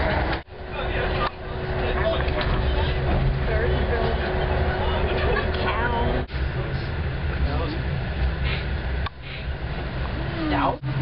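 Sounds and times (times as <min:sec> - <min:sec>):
faint indistinct voices: 0:00.0 - 0:08.6
train rumbling inside carriage: 0:00.0 - 0:11.0.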